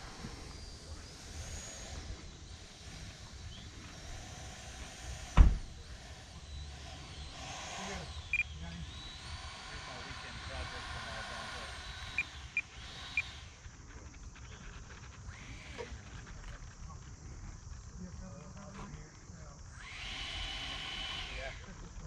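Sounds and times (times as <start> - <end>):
electric ducted fan whine: 0.0 - 13.9, 14.5 - 22.0.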